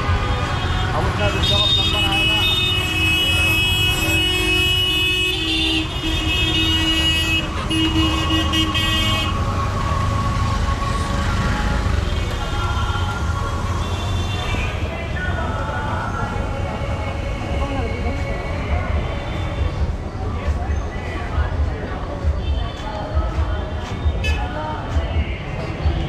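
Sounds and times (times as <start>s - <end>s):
auto-rickshaw and scooter engines: 0.0s - 26.0s
vehicle horns honking: 0.3s - 9.4s.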